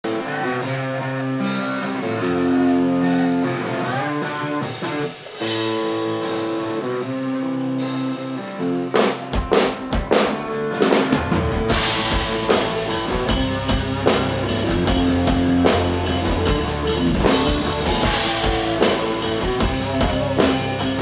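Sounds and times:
drums: 0.0 - 21.0
electric guitar notes: 0.0 - 21.0
rock band playing: 0.0 - 21.0.

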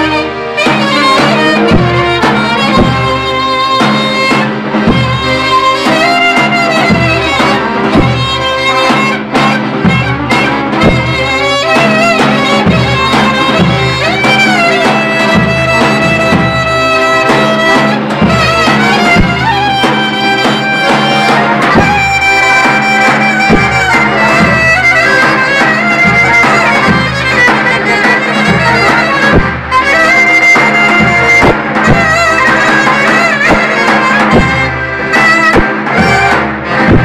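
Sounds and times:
accordion bass and chords: 0.0 - 37.0
clarinet melody: 0.0 - 37.0.

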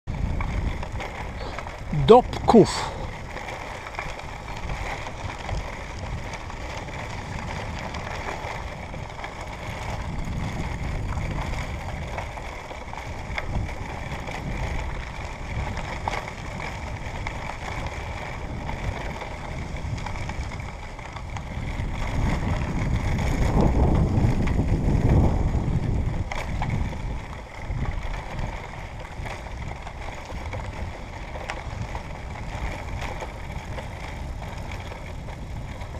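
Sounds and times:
tyres rolling over gravel: 0.1 - 35.9
wind rumbling on microphone: 0.1 - 35.9.

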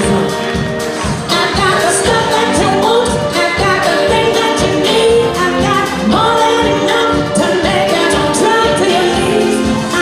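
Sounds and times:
drums: 0.0 - 10.0
woman singing into microphone: 1.3 - 10.0.

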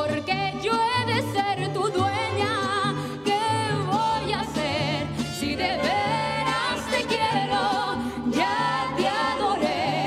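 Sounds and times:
guitars and violins: 0.0 - 10.0
woman singing: 0.0 - 10.0.

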